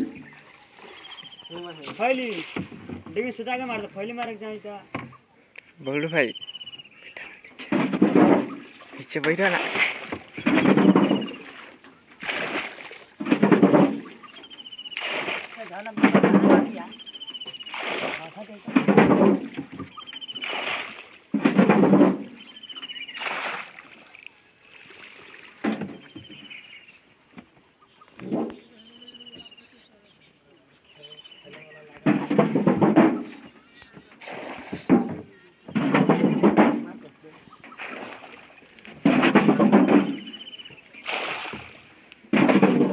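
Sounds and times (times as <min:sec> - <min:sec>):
water splashing and sloshing: 0:00.0 - 0:42.9.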